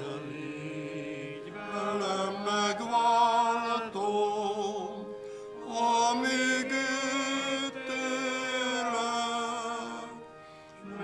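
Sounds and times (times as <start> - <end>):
congregation singing a hymn: 0.0 - 11.0
keyboard accompaniment: 0.0 - 11.0.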